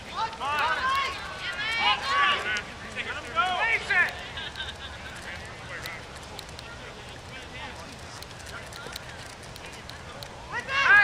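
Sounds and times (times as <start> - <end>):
people shouting: 0.1 - 2.6, 10.5 - 11.0.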